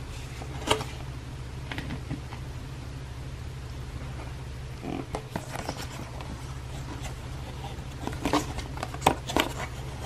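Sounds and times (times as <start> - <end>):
steady low hum: 0.0 - 10.0
paper packaging rustling: 5.2 - 10.0.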